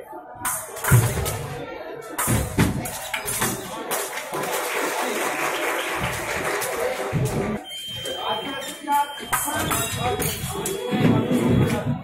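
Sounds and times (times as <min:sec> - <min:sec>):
voices: 0:00.0 - 0:12.0
people clapping: 0:02.4 - 0:07.6.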